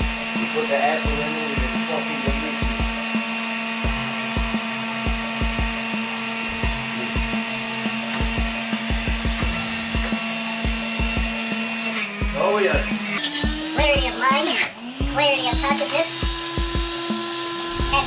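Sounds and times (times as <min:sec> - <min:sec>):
high motor whine: 0:00.0 - 0:18.0
juicer motor humming: 0:00.0 - 0:18.0.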